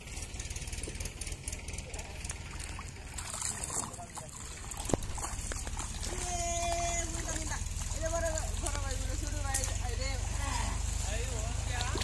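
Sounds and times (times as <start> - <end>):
water trickling and splashing: 0.0 - 12.0
man wading in water: 1.8 - 12.0.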